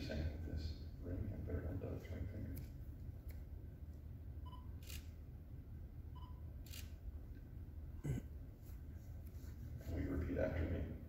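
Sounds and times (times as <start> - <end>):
camera beep: 4.4 - 5.1, 6.1 - 6.9.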